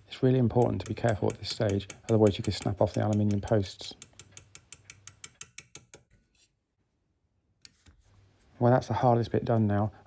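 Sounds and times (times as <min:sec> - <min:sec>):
hammer tapping on pin punch: 0:00.5 - 0:06.0.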